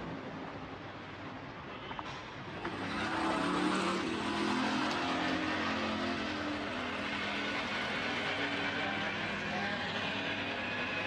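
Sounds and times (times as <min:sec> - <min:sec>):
motor traffic engine hum: 0:02.6 - 0:11.0.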